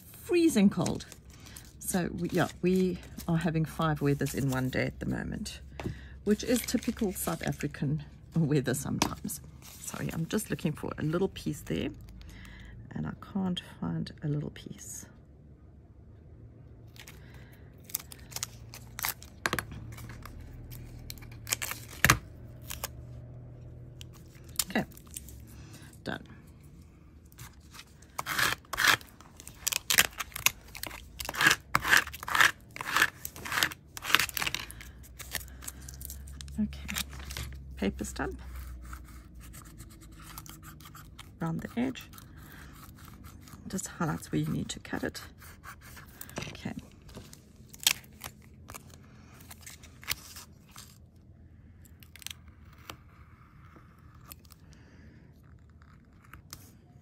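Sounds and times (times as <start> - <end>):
stylus scratching foil: 27.5 - 46.4.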